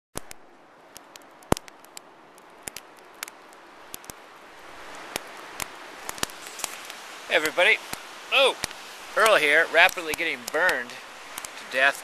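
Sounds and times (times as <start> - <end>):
campfire crackling and popping: 0.1 - 12.0
soft steady hiss: 0.3 - 12.0.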